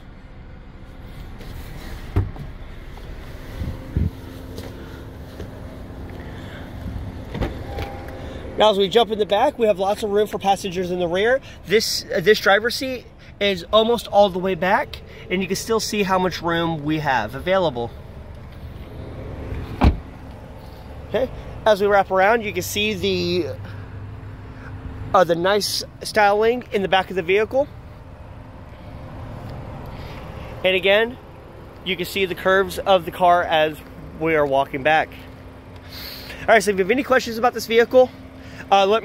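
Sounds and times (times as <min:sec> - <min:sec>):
car engine running hum: 0:00.0 - 0:39.0
quiet outdoor rumble: 0:00.0 - 0:39.0
car door shutting thump: 0:02.1 - 0:02.6, 0:07.2 - 0:08.2, 0:19.7 - 0:20.1.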